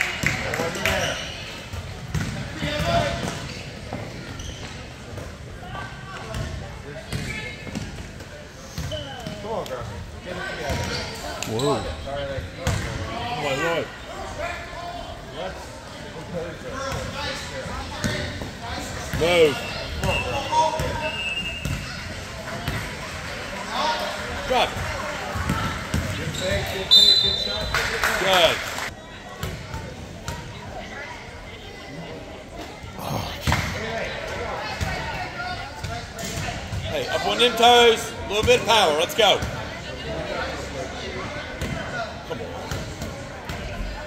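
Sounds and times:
spectators murmuring: 0:00.0 - 0:44.0.

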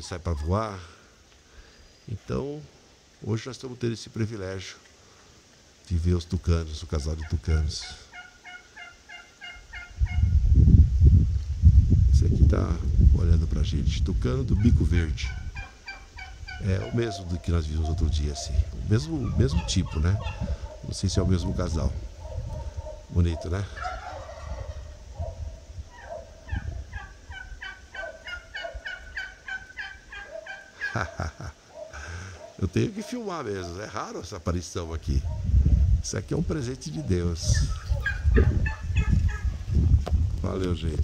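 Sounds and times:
toucan calling hoarse notes: 0:06.8 - 0:10.4, 0:14.3 - 0:34.4, 0:36.6 - 0:39.6
low rumble on microphone: 0:10.0 - 0:15.6, 0:16.5 - 0:23.8, 0:24.5 - 0:27.3, 0:35.0 - 0:41.0
bird croaking notes: 0:14.6 - 0:17.6.

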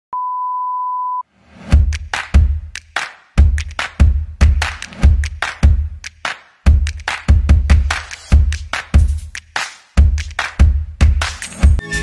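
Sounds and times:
electronic beep: 0:00.1 - 0:01.2
electronic music track: 0:11.2 - 0:12.0.

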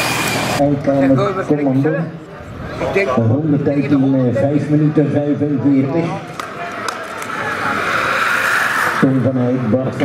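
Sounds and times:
bicycles whooshing past: 0:00.0 - 0:00.6, 0:06.4 - 0:10.0.

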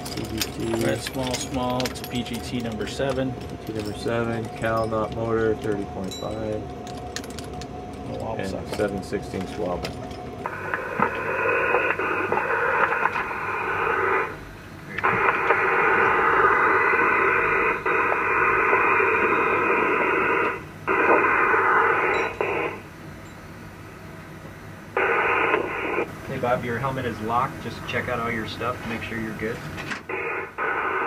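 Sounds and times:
radio channel hiss: 0:08.1 - 0:22.9, 0:24.6 - 0:31.0.

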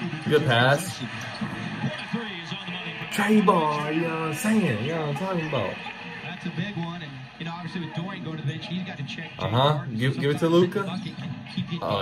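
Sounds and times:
arena crowd noise: 0:00.0 - 0:12.0
announcer talking: 0:03.0 - 0:05.8.

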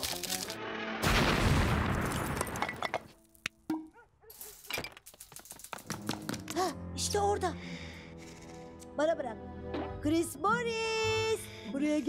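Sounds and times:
falling debris clinks: 0:01.9 - 0:03.1.

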